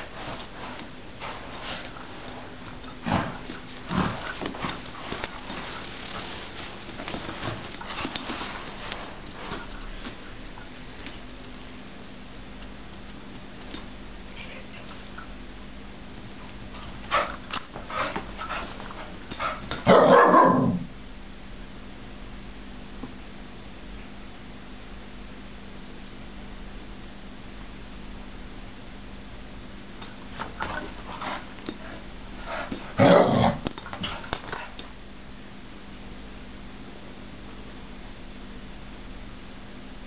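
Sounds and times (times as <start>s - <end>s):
small dog barking: 19.8s - 20.8s.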